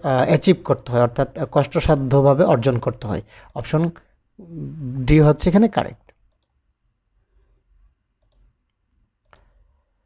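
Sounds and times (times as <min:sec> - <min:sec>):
computer mouse clicks: 0:06.2 - 0:06.6, 0:08.2 - 0:09.7.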